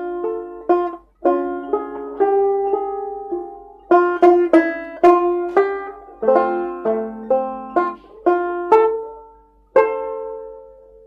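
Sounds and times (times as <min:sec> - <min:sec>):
banjo melody: 0:00.0 - 0:11.0.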